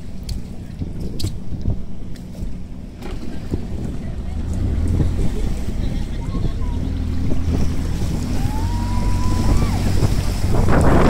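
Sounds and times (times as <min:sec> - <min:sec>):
outboard motor droning: 0:00.0 - 0:11.0
wind buffeting microphone: 0:00.0 - 0:11.0
water rushing past: 0:02.6 - 0:11.0.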